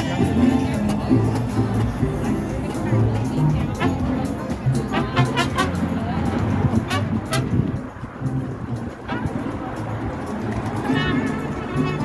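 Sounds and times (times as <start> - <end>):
crowd talking: 0.0 - 12.0
traffic passing: 0.0 - 12.0.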